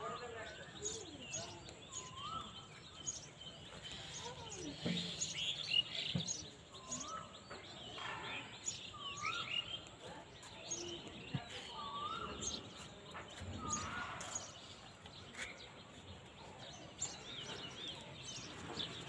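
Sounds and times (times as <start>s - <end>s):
birds singing and chirping: 0.0s - 19.0s.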